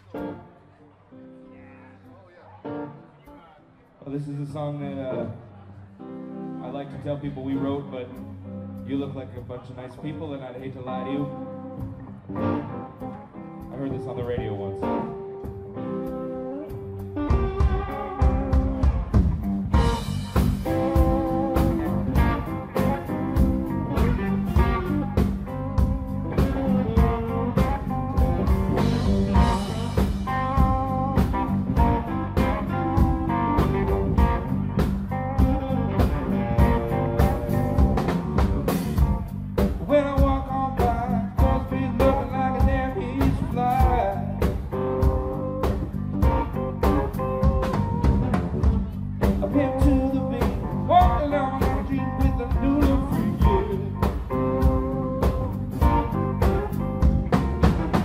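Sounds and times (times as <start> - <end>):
electric guitars: 0.0 - 3.4, 4.8 - 58.0
electric bass: 6.7 - 58.0
drum kit: 11.8 - 58.0.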